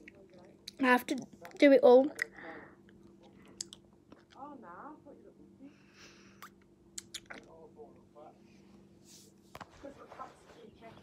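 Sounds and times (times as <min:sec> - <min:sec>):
wet mouth clicks and slurps: 0:03.2 - 0:04.4, 0:06.4 - 0:07.5.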